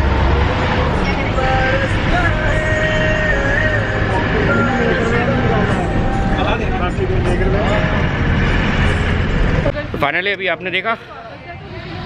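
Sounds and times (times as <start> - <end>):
bus engine and road noise: 0.0 - 12.0
faint passengers' voices: 0.9 - 8.3, 9.3 - 12.0.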